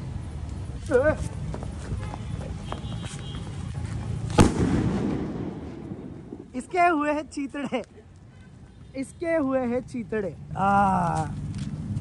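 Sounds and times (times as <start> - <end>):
firecracker bang with echo: 4.4 - 6.5.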